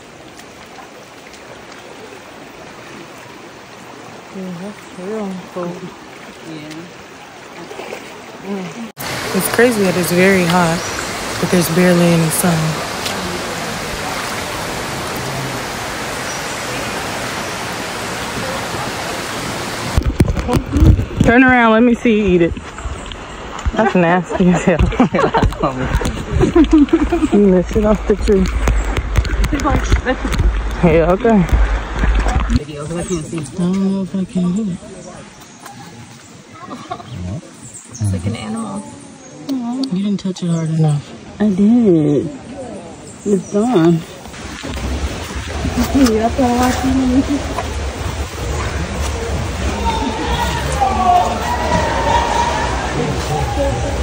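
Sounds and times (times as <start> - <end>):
people talking outdoors: 1.9 - 54.0
faint voices talking: 48.2 - 54.0.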